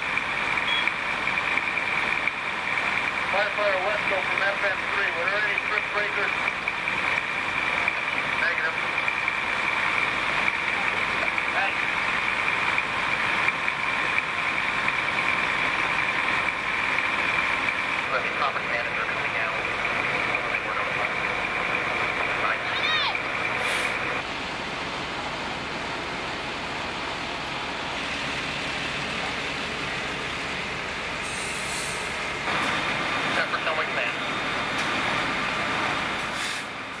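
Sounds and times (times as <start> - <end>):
fire truck engines running: 0.0 - 37.0.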